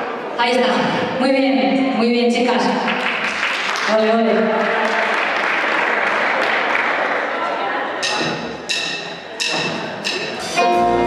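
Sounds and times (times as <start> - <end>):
audience hall noise: 2.7 - 11.0
drumsticks clicking: 8.0 - 10.5
band playing: 9.8 - 11.0.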